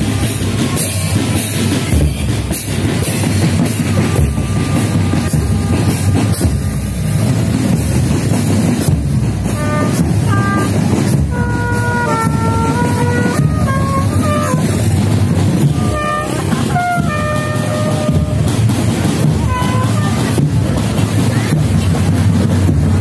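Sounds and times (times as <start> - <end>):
marching drums beating: 0.0 - 23.0
brass horns playing a tune: 2.4 - 7.8, 9.2 - 20.9.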